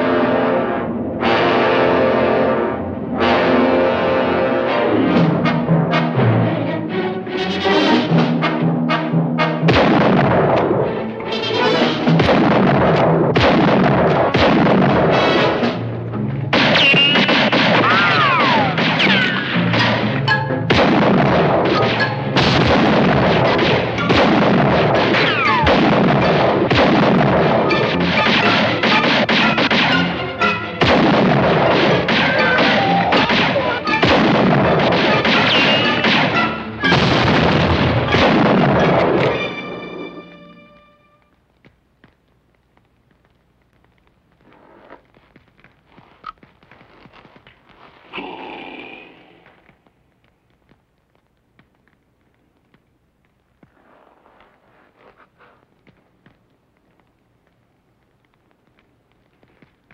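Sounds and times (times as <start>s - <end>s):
orchestral film score: 0.0s - 13.2s, 15.0s - 41.2s
rifle shots: 9.7s - 10.8s, 12.0s - 15.8s, 16.5s - 20.0s, 20.7s - 30.2s, 30.8s - 39.4s.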